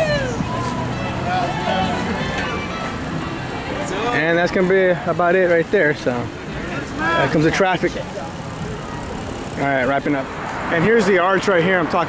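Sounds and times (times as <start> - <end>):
people calling out: 0.0 - 4.2, 6.8 - 7.5.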